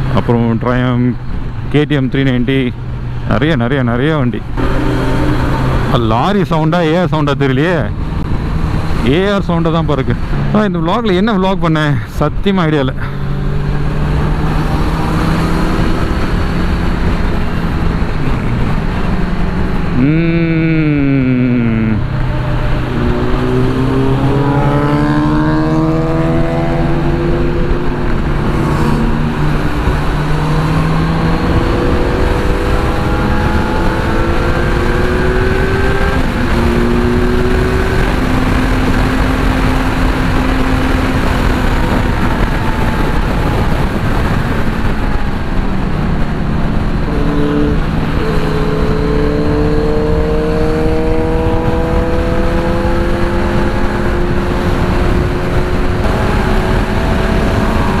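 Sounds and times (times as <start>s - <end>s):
motorcycle engine at speed: 4.3s - 10.7s, 13.0s - 58.0s
wind rush: 12.9s - 58.0s.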